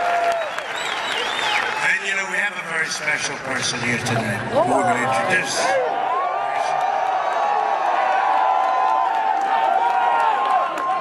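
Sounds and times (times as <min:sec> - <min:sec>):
crowd applauding: 0:00.0 - 0:11.0.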